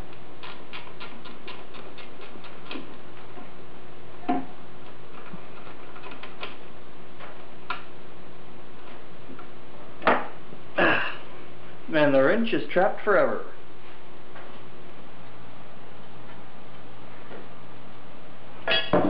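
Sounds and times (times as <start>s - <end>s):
faint steady hum: 0.0s - 19.0s.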